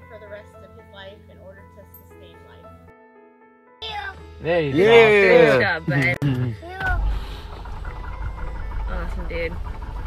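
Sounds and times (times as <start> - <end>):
aircraft piston engine rumbling: 5.2 - 10.0.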